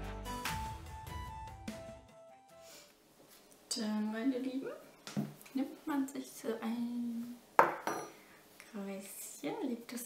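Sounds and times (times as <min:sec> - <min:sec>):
woman's voice: 0:03.7 - 0:04.9, 0:05.5 - 0:07.4, 0:08.6 - 0:10.0
metal tool clinking on mat: 0:07.6 - 0:08.1.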